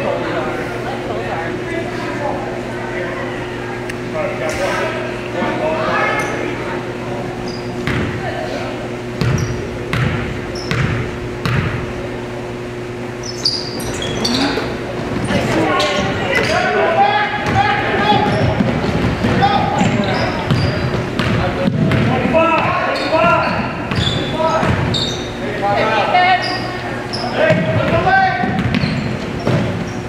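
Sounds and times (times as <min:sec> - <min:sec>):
basketball bouncing on wooden floor: 0:07.8 - 0:08.2, 0:09.2 - 0:11.8, 0:17.4 - 0:24.9, 0:27.5 - 0:29.9
people shouting: 0:19.3 - 0:20.4.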